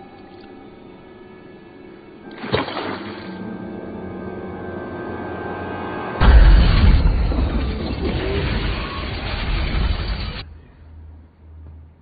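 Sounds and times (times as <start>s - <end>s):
orchestral film score: 0.0s - 11.2s
deep boom: 6.2s - 10.4s
loud rumble: 6.2s - 10.5s.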